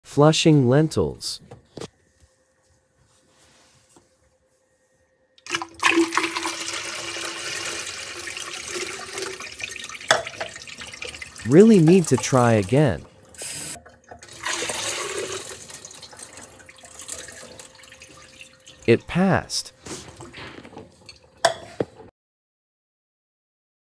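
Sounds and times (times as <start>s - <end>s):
toilet flushing: 5.4s - 21.5s.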